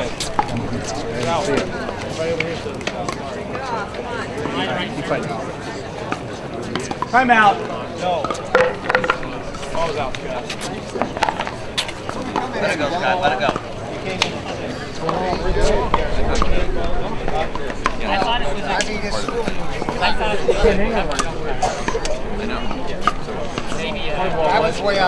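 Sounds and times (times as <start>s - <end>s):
people talking: 0.0s - 25.0s
sharp knocks and pops: 8.5s - 9.3s.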